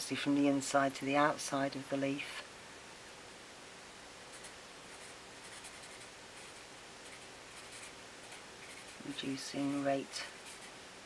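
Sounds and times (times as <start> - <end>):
felt-tip marker scratching on paper: 4.3 - 9.2, 10.3 - 10.8.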